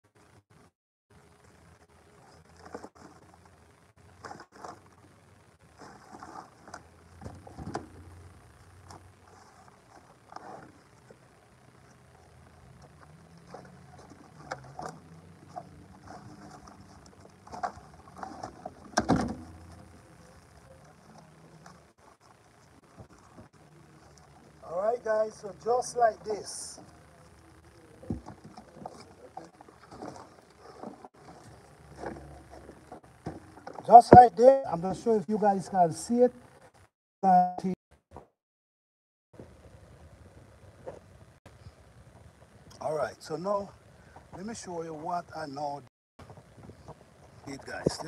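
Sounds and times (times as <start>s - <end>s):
soil rustling and scraping: 1.5s - 36.2s.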